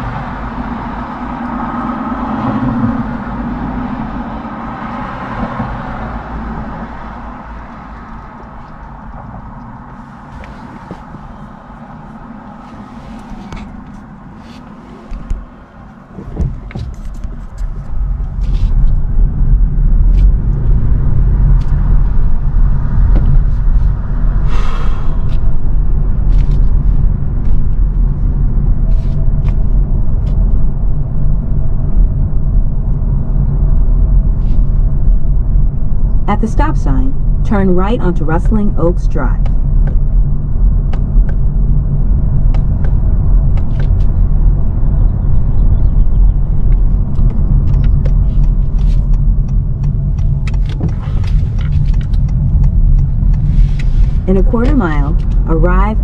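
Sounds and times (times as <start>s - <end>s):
car engine and tyre rumble: 0.0s - 56.0s
cross traffic passing: 0.0s - 56.0s.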